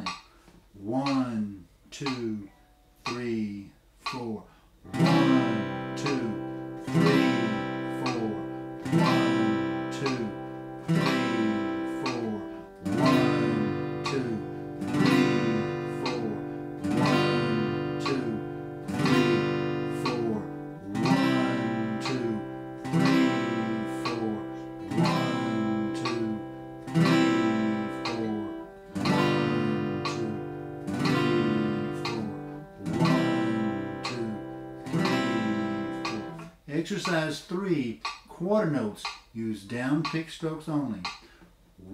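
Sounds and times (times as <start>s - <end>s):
acoustic guitar strummed chords: 4.9s - 38.9s.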